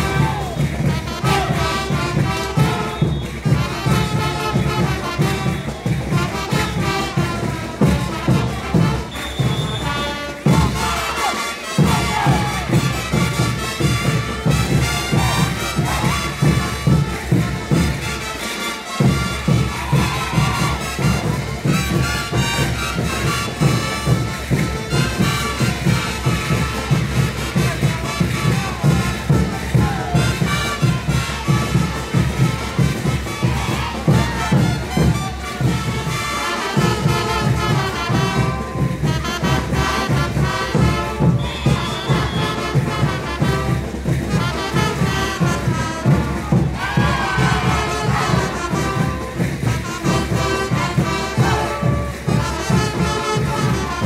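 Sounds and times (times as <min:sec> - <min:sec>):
brass band playing: 0:00.0 - 0:54.0
crowd cheering: 0:00.0 - 0:54.0.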